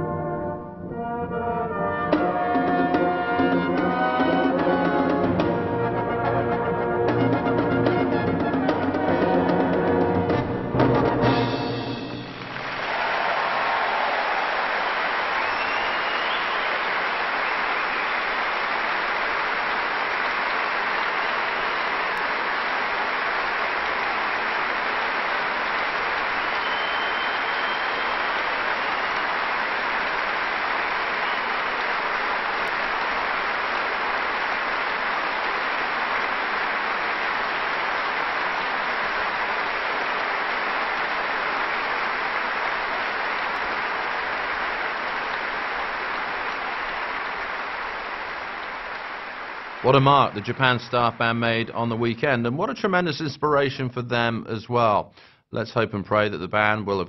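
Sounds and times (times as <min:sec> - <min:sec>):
large audience applauding: 0:11.1 - 0:52.1.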